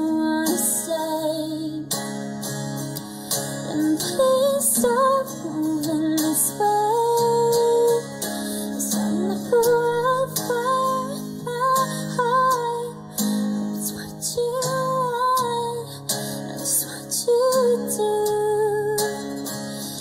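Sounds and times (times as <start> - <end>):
woman singing: 0.0 - 2.2, 3.5 - 20.0
strummed acoustic guitar: 0.0 - 20.0.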